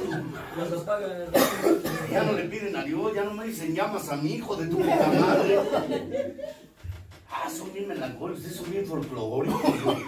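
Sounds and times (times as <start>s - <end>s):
man speaking: 0.0s - 6.0s, 7.3s - 10.0s
sharp coughs: 1.3s - 2.3s.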